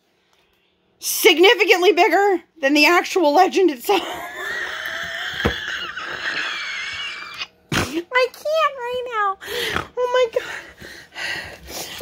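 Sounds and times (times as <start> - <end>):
woman wheezing laughter: 4.0 - 7.5.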